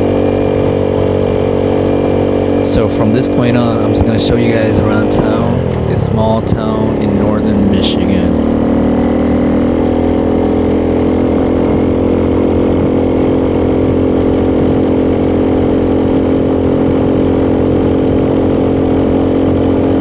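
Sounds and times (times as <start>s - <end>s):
motorcycle engine cruising: 0.0s - 20.0s.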